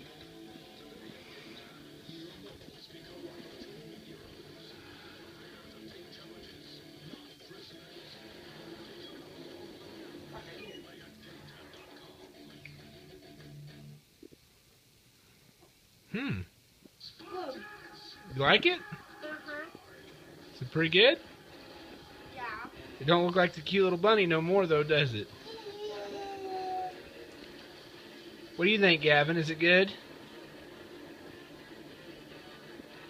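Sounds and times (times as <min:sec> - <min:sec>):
television speech: 0:00.0 - 0:13.5, 0:16.1 - 0:33.0
faint television music: 0:00.0 - 0:33.0.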